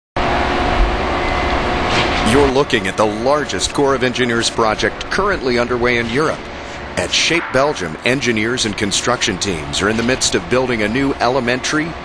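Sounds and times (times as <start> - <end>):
heavy machinery engine drone: 0.2 - 12.0.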